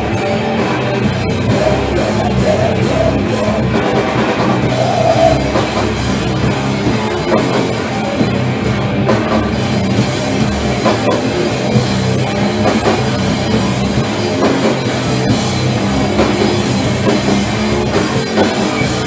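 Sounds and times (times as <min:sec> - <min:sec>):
distorted electric guitar: 0:00.0 - 0:19.0.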